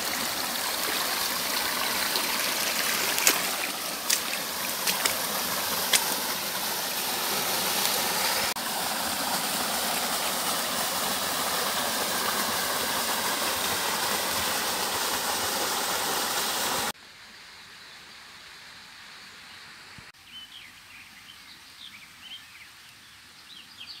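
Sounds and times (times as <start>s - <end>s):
waterfall splashing into stream: 0.0s - 16.9s.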